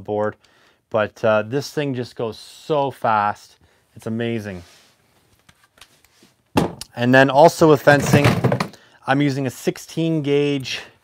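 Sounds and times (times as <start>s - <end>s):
man speaking: 0.0s - 4.7s, 6.8s - 11.0s
tool set down in plastic box: 8.0s - 8.8s.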